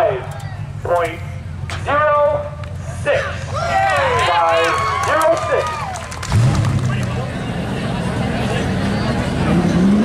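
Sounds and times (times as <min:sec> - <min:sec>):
low engine hum: 0:00.0 - 0:10.0
people shouting and whooping: 0:03.2 - 0:06.3.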